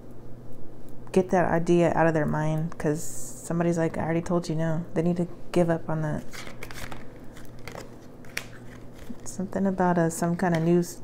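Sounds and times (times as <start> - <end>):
cards rustling: 6.1 - 10.8.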